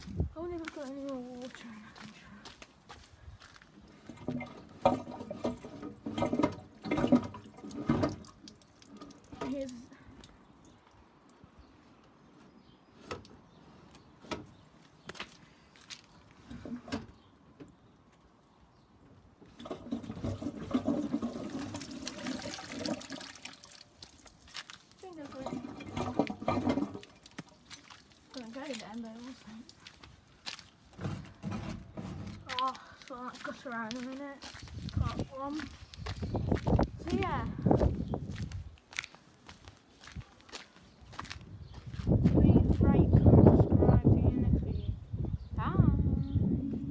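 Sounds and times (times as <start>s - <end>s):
water pouring and splashing: 3.9s - 11.0s, 19.5s - 30.7s.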